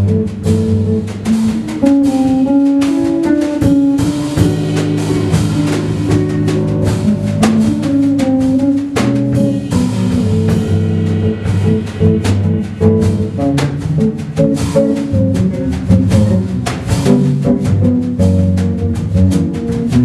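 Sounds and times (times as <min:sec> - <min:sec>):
drum kit playing: 0:00.0 - 0:20.0
electric bass guitar playing: 0:00.0 - 0:20.0.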